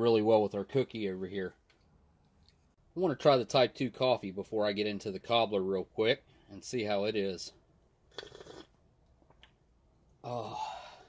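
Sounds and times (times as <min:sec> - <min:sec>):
slurping sip from a mug: 0:08.1 - 0:08.8.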